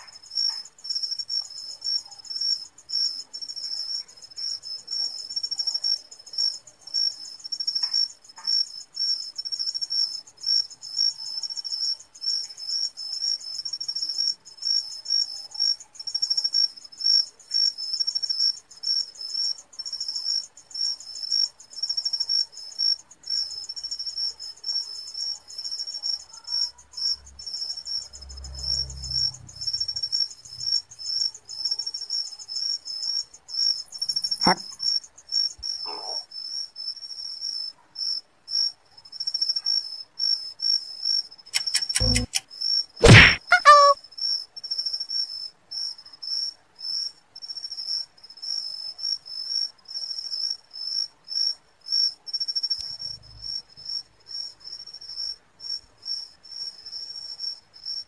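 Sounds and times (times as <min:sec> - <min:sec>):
crickets trilling: 0:00.0 - 0:39.6
fainter lower chirp: 0:41.6 - 0:42.4, 0:43.0 - 0:44.0.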